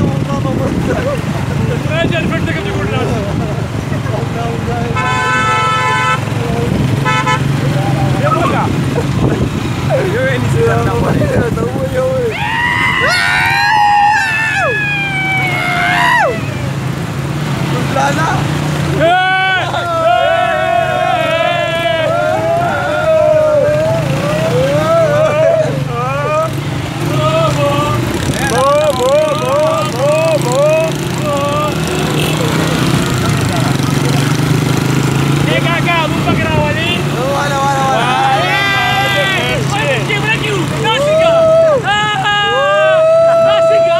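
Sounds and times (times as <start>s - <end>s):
men calling out: 0.0s - 16.9s, 17.7s - 43.9s
wind: 0.0s - 43.9s
vehicle horn honking: 5.0s - 6.4s, 7.0s - 7.6s.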